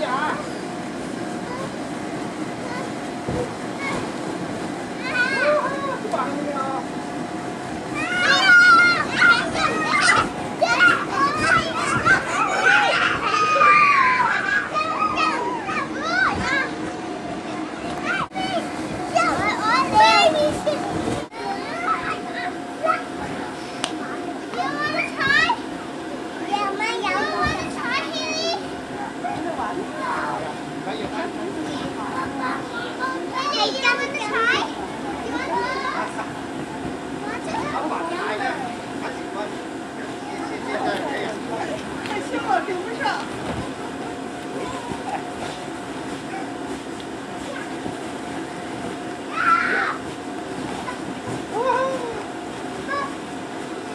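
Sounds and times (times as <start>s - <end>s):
children shouting and chattering: 4.8s - 6.8s, 7.7s - 30.6s, 31.7s - 50.1s
children shouting and squealing: 8.0s - 16.8s, 49.3s - 50.0s.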